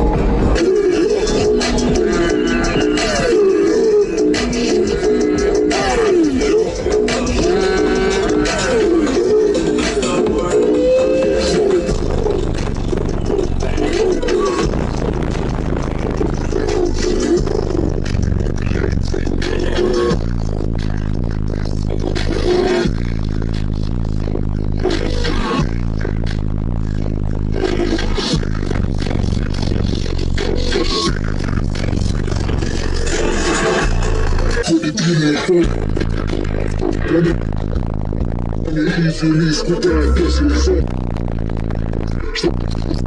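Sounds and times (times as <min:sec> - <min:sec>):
bass-heavy music from subwoofers: 0:00.0 - 0:43.0.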